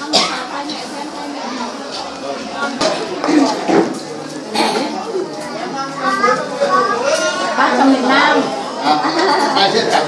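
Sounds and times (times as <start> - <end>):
indistinct talk of people: 0.0 - 10.0.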